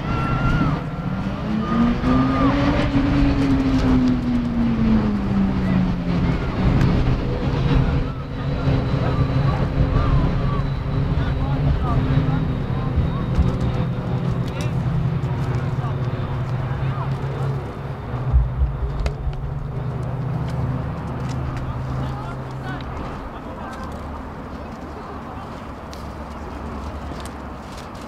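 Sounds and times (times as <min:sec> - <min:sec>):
vehicle engine revving: 0:16.8 - 0:22.2
steady low hum: 0:17.3 - 0:22.0.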